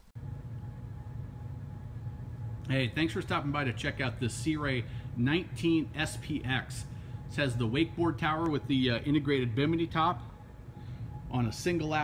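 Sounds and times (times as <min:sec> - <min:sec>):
low hum of large indoor room: 0:00.0 - 0:12.0.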